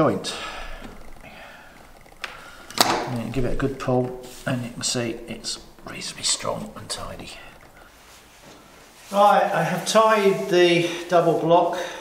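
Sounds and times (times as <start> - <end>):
rope rustling: 0.0 - 11.5.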